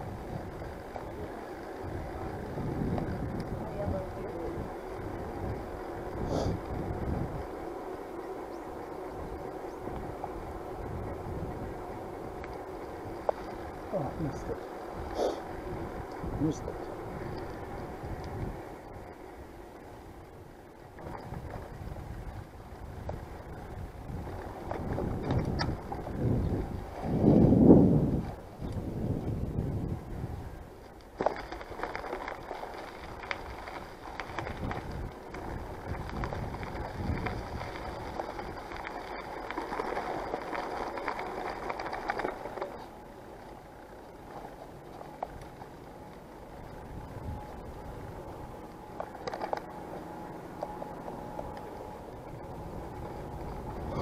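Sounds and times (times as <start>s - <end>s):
wind and tyre rumble: 0.0s - 54.0s.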